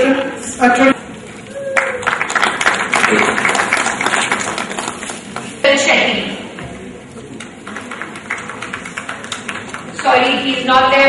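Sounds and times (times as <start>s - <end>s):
seated audience in a hall: 0.0s - 11.0s.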